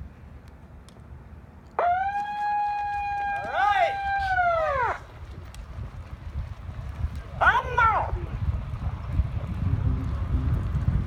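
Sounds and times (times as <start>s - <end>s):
siren sounding: 1.8s - 5.0s
voices shouting: 2.1s - 5.1s, 7.4s - 8.2s.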